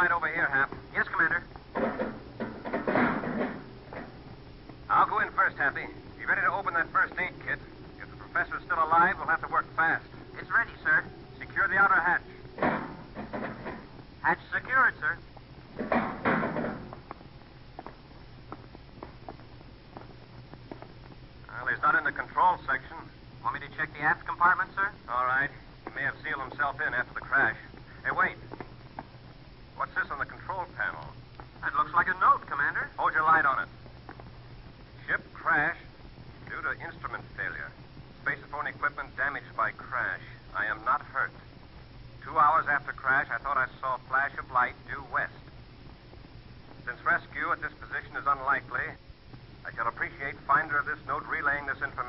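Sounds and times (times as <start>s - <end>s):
voices speaking in radio drama: 0.0s - 4.1s, 4.8s - 17.0s, 21.4s - 28.6s, 29.7s - 34.1s, 35.0s - 41.6s, 42.2s - 45.6s, 46.7s - 49.0s, 49.6s - 52.0s.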